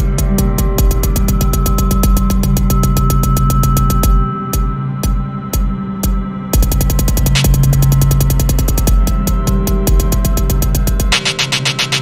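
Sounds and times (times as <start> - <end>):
drum machine fast roll: 0.0 - 12.0.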